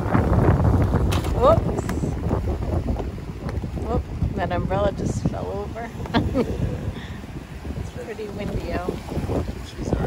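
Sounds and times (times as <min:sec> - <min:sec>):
sea waves on rocky shore: 0:00.0 - 0:10.0
wind buffeting microphone: 0:00.0 - 0:10.0.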